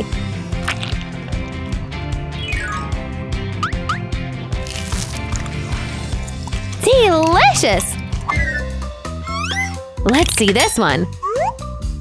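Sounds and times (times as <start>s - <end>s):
upbeat background music: 0.0s - 12.0s
squeaky whistle-like glides: 8.3s - 9.9s.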